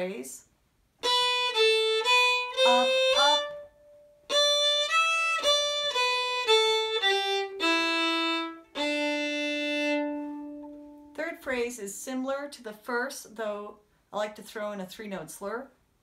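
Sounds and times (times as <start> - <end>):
solo fiddle playing slowly: 1.0 - 11.2.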